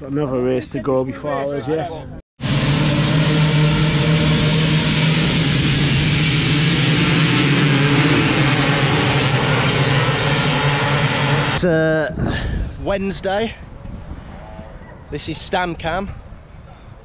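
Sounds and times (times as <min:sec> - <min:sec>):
dirt bike engines racing: 0:02.4 - 0:12.2.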